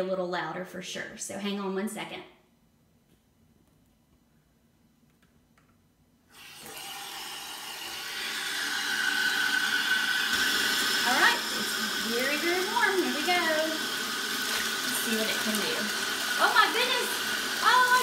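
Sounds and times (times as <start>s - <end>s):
water pouring into tub: 6.4s - 18.0s.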